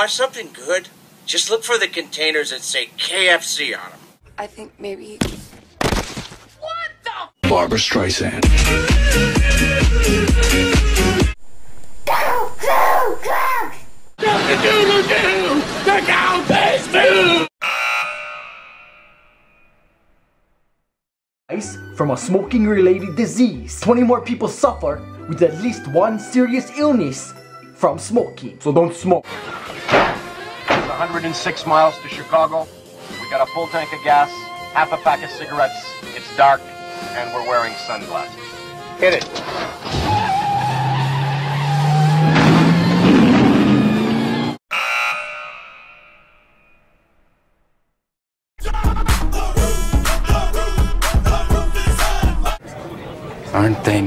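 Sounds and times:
car engine revving: 39.8s - 44.6s.

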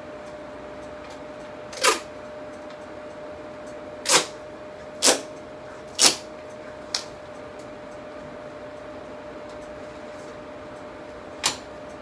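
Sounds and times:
faint hum: 0.0s - 12.0s
tape ripped off a roll: 4.1s - 4.4s.

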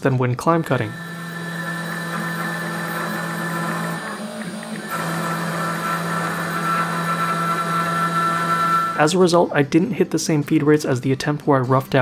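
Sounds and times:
milling spindle whine: 0.6s - 9.2s.

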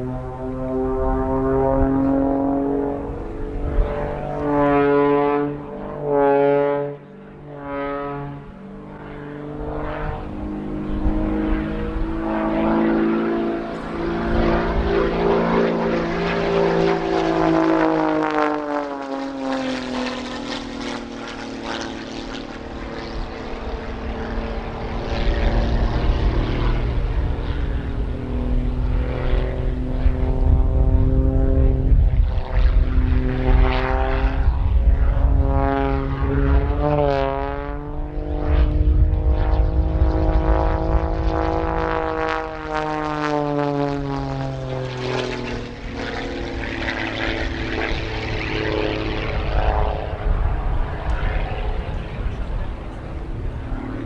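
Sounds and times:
propeller plane engine: 0.0s - 54.0s.

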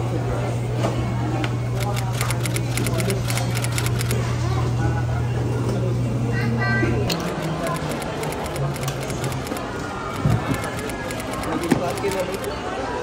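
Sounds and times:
background chatter: 0.0s - 13.0s.

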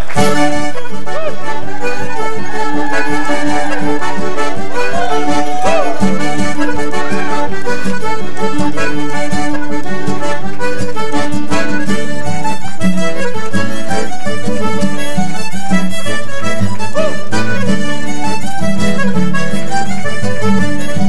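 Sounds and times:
band rhythm accompaniment: 0.0s - 21.0s
button accordion: 0.0s - 21.0s
fiddle: 0.0s - 21.0s.

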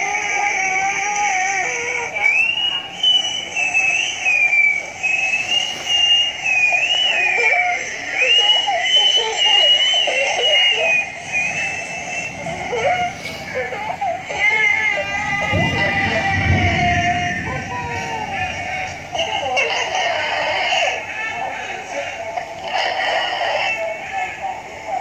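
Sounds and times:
chattering cartoon voices: 0.0s - 25.0s
high wavering squeal: 2.2s - 20.8s.

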